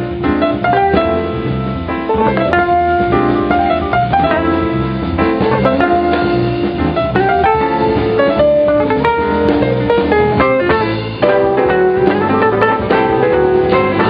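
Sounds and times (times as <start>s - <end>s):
jazz band playing: 0.0s - 14.0s.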